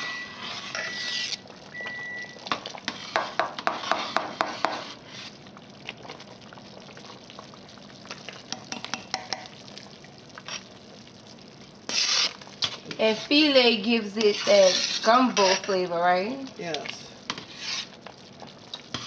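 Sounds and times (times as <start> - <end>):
spoon scraping metal pot: 0.0 - 1.5, 2.5 - 5.4, 11.9 - 15.9, 17.3 - 18.0
stew simmering: 0.0 - 19.0.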